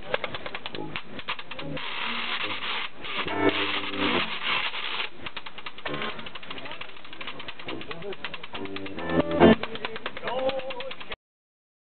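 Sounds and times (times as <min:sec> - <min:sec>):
washboard scraped in jazz rhythm: 0:00.1 - 0:11.2.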